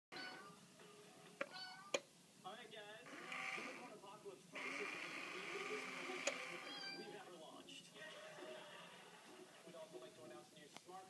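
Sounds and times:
high mechanical whir: 3.1s - 3.9s, 4.6s - 6.7s.

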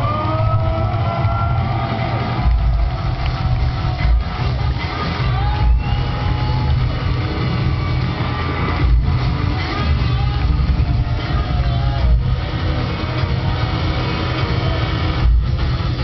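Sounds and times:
electronic hip-hop through pa: 0.0s - 16.0s.

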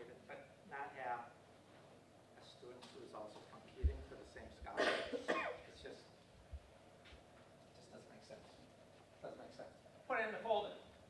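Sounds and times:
person coughing: 4.8s - 5.6s.

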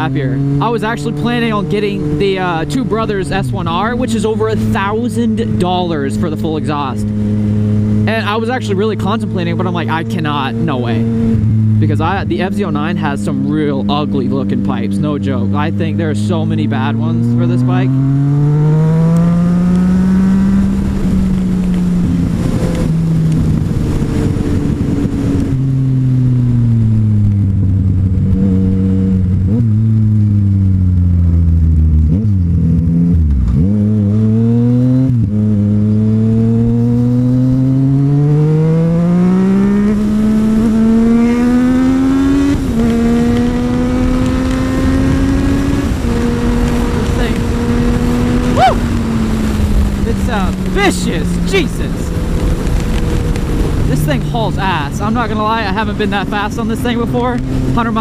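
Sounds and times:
motorcycle engine revving at speed: 0.0s - 58.0s.

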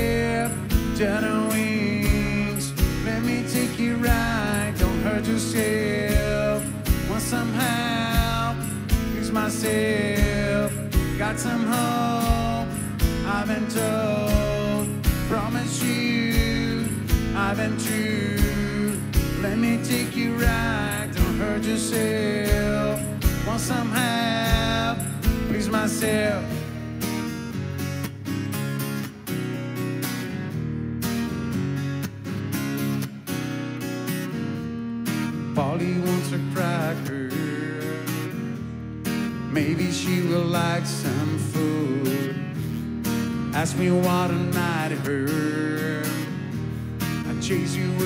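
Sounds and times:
person singing: 0.0s - 26.7s, 35.6s - 38.3s, 39.5s - 42.6s, 47.2s - 48.0s
acoustic guitar strumming: 0.0s - 48.0s.

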